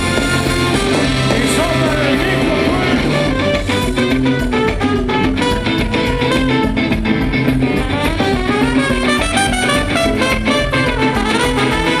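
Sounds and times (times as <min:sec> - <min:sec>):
ska band playing: 0:00.0 - 0:12.0
trumpet: 0:00.0 - 0:12.0.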